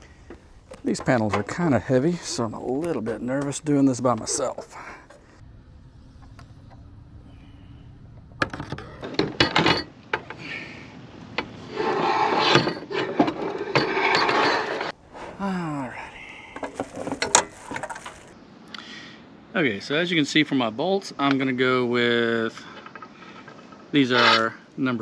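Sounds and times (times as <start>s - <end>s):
low steady hum: 0.0s - 11.8s
panel scraping and rubbing: 11.6s - 15.3s, 22.8s - 24.6s.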